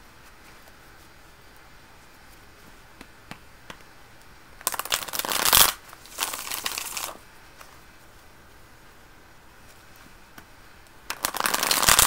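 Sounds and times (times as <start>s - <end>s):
light taps on cards: 3.0s - 3.9s
cards shuffling flutter: 4.6s - 7.7s, 11.1s - 12.0s.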